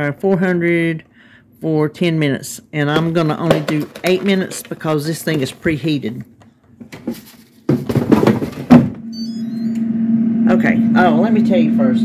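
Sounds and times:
faint electronic beeps: 0:09.1 - 0:10.0.

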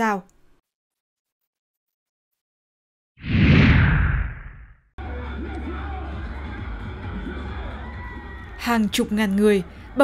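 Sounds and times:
transition whoosh with low boom: 0:03.2 - 0:04.8.

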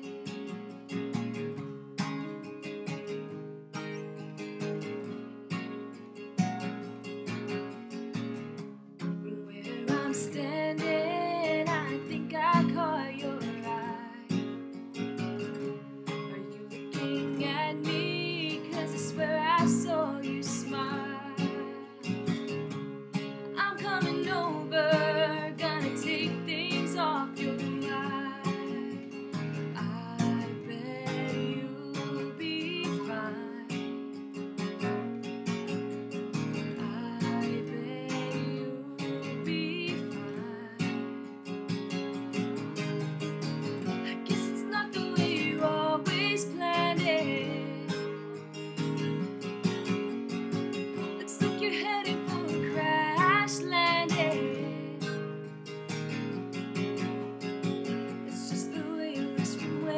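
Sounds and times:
acoustic guitar strumming: 0:00.0 - 0:59.9
woman singing: 0:09.1 - 0:14.6, 0:16.0 - 0:22.5, 0:23.5 - 0:34.2, 0:36.6 - 0:41.4, 0:42.3 - 0:48.4, 0:50.8 - 0:55.5, 0:57.8 - 0:59.9.

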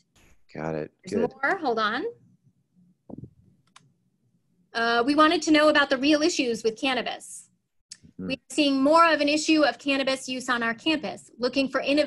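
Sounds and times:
person speaking: 0:00.6 - 0:01.6, 0:03.1 - 0:03.4, 0:07.9 - 0:08.4.

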